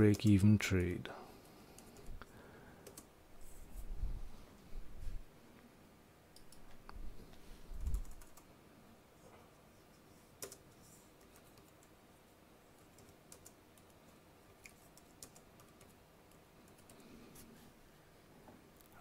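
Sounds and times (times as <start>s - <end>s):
computer keyboard keystrokes: 2.8s - 3.1s, 7.8s - 8.5s, 10.4s - 10.6s, 11.2s - 12.0s, 12.8s - 14.0s, 14.6s - 17.0s.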